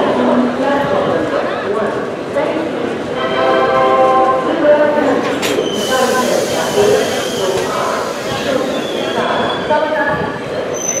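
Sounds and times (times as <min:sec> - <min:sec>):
crowd voices: 0:00.0 - 0:11.0
train rumble: 0:00.0 - 0:11.0.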